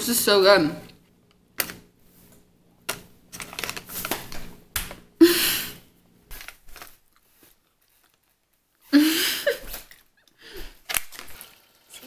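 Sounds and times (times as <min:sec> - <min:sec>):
crunchy chewing: 0:06.5 - 0:08.8.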